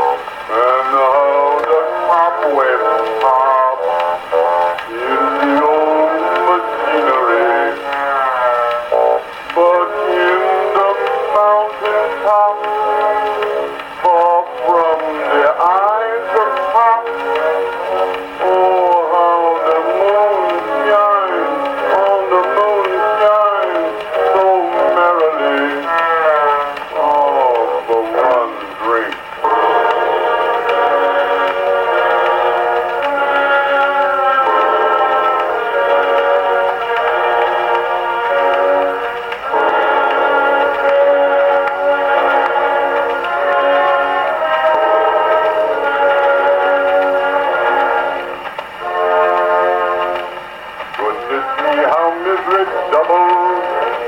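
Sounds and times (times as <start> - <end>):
band accompaniment: 0.0 - 54.0
man singing: 0.0 - 54.0
old phonograph recording of song: 0.0 - 54.0.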